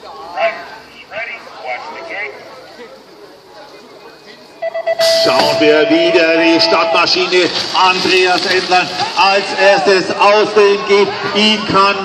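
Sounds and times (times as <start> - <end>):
electronic start beeps: 4.6 - 7.3
voice over loudspeaker: 5.0 - 12.0.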